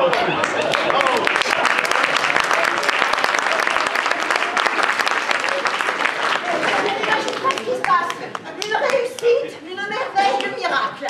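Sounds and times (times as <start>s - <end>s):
audience clapping: 0.0s - 9.4s
voices: 0.0s - 11.0s.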